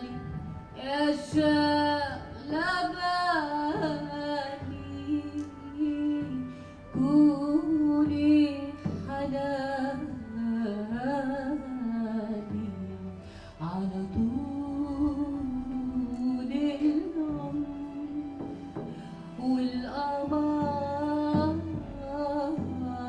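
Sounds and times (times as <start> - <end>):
woman singing slow melody: 0.0 - 23.0.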